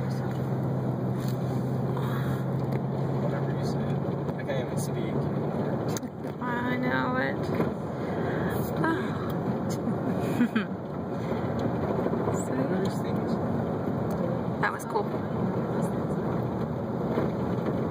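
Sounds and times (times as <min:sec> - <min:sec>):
car engine: 0:00.0 - 0:17.9
tyre road noise: 0:00.0 - 0:17.9.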